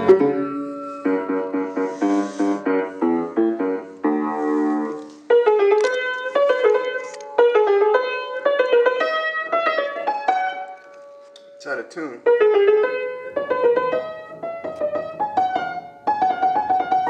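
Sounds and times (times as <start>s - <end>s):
piano playing: 0.0s - 17.0s
person speaking: 11.6s - 12.3s.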